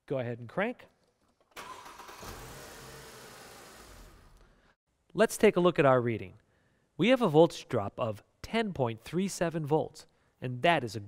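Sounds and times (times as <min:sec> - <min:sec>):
car starter motor cranking: 0:01.6 - 0:04.4.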